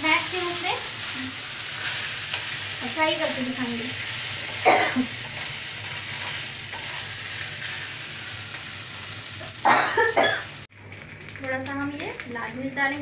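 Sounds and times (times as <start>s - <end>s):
wooden spatula turning food: 0.0s - 9.6s
food sizzling in a pan: 0.0s - 13.0s.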